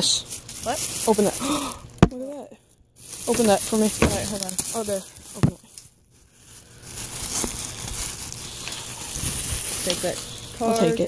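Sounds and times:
plastic bags rustling: 0.0s - 2.3s, 3.0s - 11.0s.

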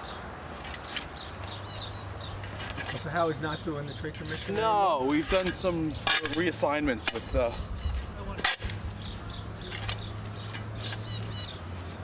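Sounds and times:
low street hum: 0.0s - 12.0s.

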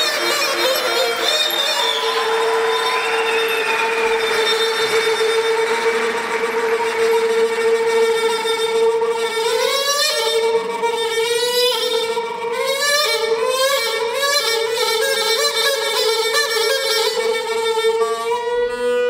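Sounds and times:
reed wind instrument playing: 0.0s - 19.0s.

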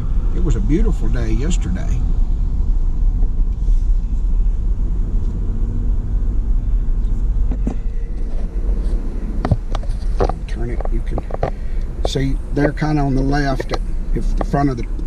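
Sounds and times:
engine and tyre rumble: 0.0s - 15.0s.

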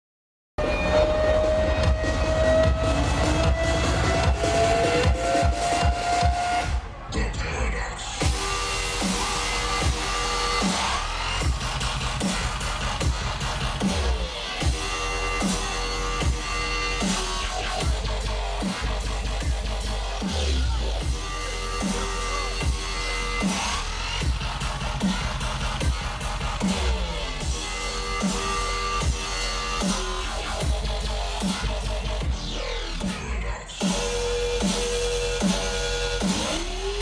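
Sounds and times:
loud dubstep music: 0.6s - 37.0s.

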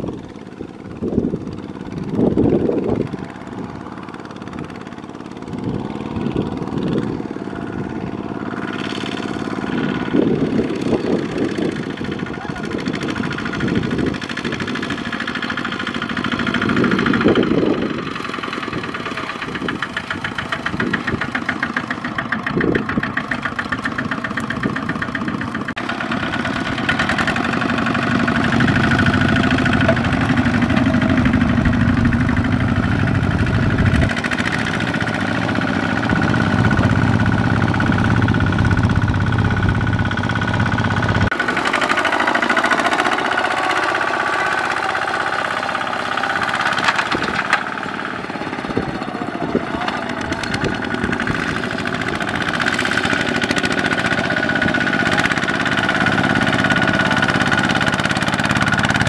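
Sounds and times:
diesel engine running under load: 0.0s - 59.0s.

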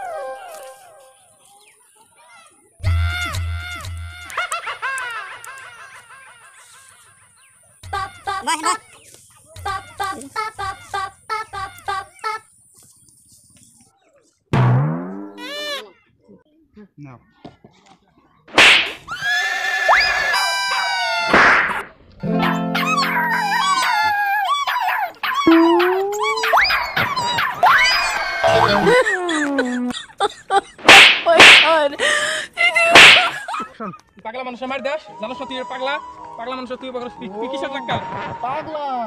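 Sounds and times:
chirpy cartoon clucks: 7.8s - 8.8s, 9.6s - 12.5s, 22.3s - 24.1s, 24.7s - 29.6s
springy boing: 14.6s - 15.4s, 25.5s - 26.1s
music: 22.2s - 23.7s
whistling and sliding tones: 25.4s - 28.8s.

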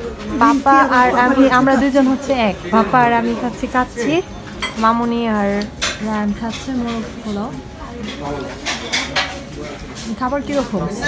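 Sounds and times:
plates and cutlery clinking: 0.0s - 11.0s.

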